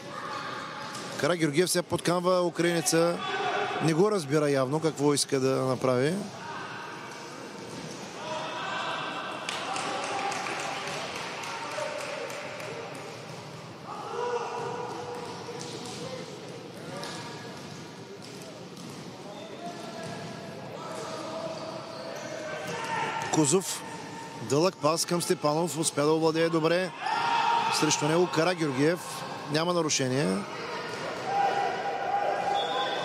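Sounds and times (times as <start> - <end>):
players shouting in a hall: 2.7 - 4.0, 8.1 - 12.8, 13.8 - 15.3, 25.1 - 29.6, 30.3 - 33.0.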